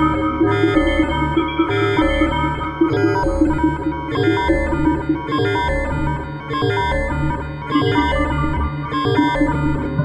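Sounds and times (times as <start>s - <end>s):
low synth bass: 0.0s - 8.7s
bright synthesizer tones: 0.0s - 9.8s.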